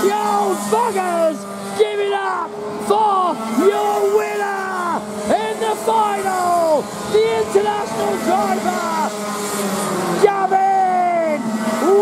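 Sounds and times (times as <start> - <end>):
excited commentator shouting: 0.0 - 9.3, 10.1 - 12.0.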